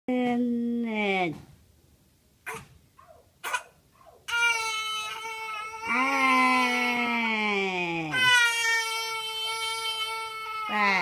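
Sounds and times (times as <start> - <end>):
toddler crying: 4.3 - 7.5, 8.1 - 11.0.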